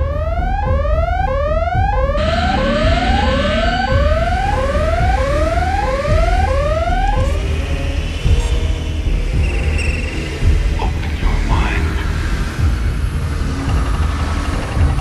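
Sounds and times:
whooping alarm tone: 0.0s - 7.5s
low rumble: 0.0s - 9.8s, 10.4s - 15.0s.

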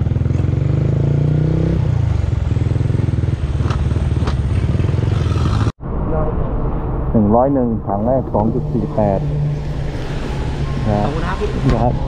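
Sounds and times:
motorcycle engine running: 0.0s - 5.7s.

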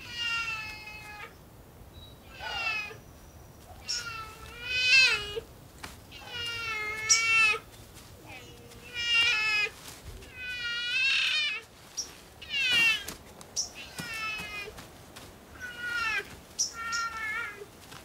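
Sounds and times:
bear cub crying: 0.0s - 1.4s, 2.2s - 3.0s, 3.7s - 5.5s, 6.1s - 11.7s, 12.4s - 14.8s, 15.5s - 17.7s.

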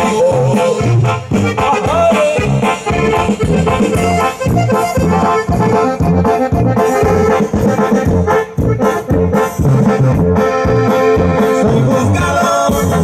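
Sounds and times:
bass and drum beat: 0.0s - 13.0s
trombones and trumpets: 0.0s - 13.0s.

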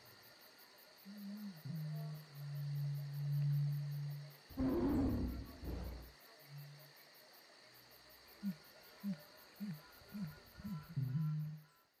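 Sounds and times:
crickets chirping: 0.0s - 12.0s
low growl-like animal call: 1.6s - 6.1s
short low animal calls: 4.6s - 6.1s.

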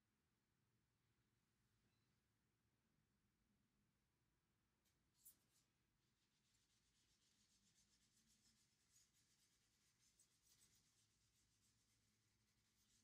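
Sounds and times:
eraser rubbing on board: 6.5s - 13.0s.

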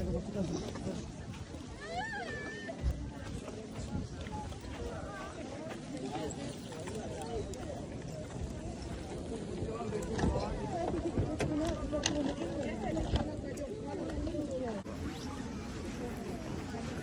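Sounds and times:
crowd chatter: 0.0s - 17.0s.

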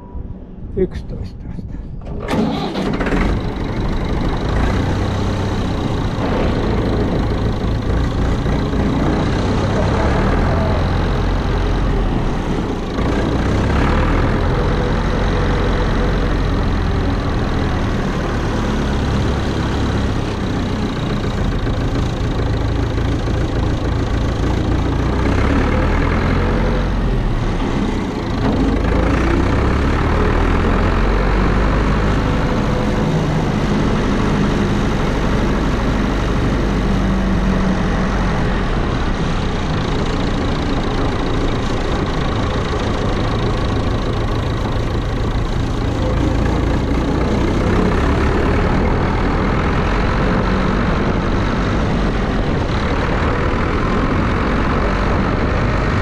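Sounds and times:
tractor engine rumbling: 0.0s - 56.0s.

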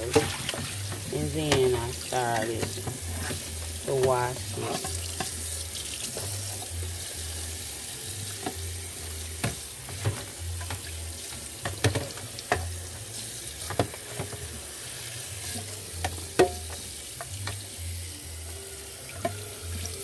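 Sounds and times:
tap running into bowl of water: 9.4s - 10.9s, 11.6s - 12.7s.

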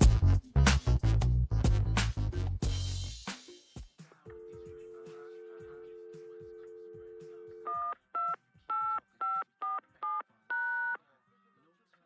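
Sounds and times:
telephone dial tone: 4.3s - 11.0s.

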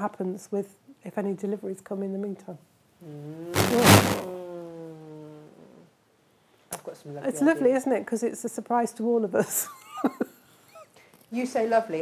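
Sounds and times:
loud rush of noise: 3.6s - 4.3s.

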